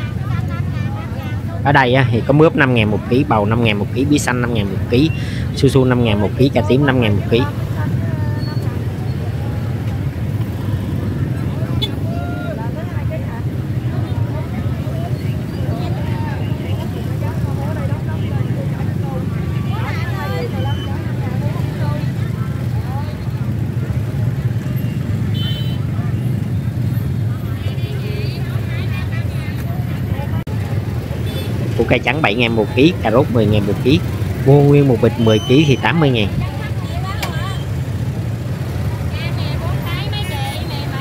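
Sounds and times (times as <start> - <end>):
indistinct voices talking: 0.0 - 41.0.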